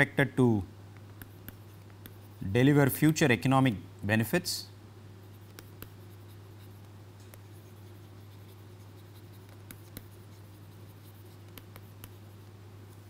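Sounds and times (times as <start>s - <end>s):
steady low hum: 0.0s - 13.0s
stylus scratching on pen tablet: 1.1s - 2.7s, 5.2s - 13.0s.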